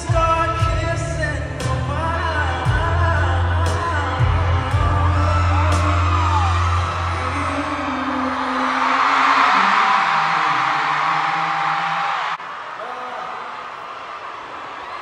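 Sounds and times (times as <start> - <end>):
pop band with heavy bass: 0.0 - 11.0
man singing: 0.0 - 12.2
crowd screaming: 2.1 - 15.0.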